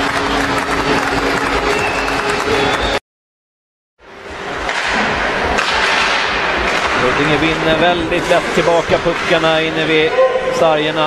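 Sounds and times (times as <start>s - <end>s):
arena ambience: 4.0s - 11.0s
sticks striking puck: 4.6s - 7.2s, 9.1s - 9.4s.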